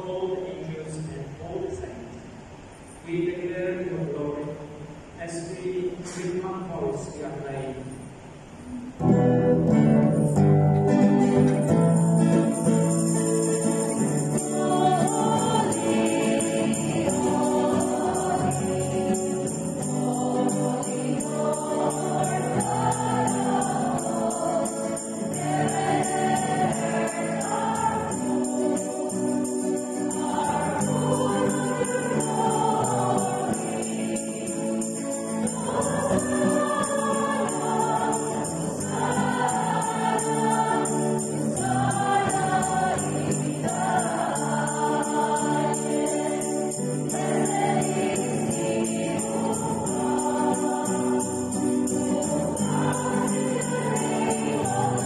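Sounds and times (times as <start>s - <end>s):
strummed acoustic guitar: 9.0s - 55.0s
women singing a hymn: 11.0s - 55.0s.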